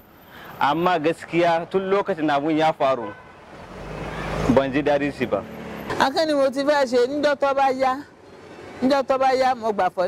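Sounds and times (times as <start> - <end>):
vehicle passing close by: 3.3 - 6.6.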